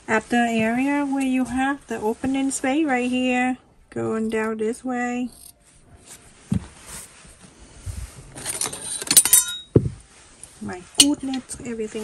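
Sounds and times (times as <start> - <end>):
soft thump: 6.5 - 6.8, 9.8 - 10.0.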